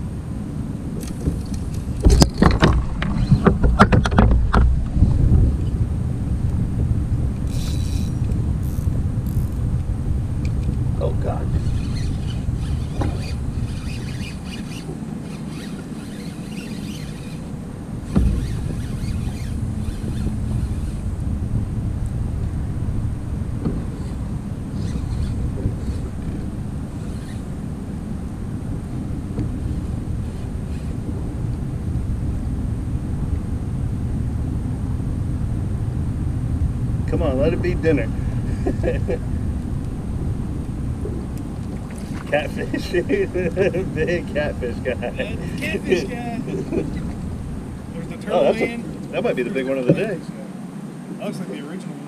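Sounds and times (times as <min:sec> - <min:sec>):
wind buffeting microphone: 0:00.0 - 0:51.4.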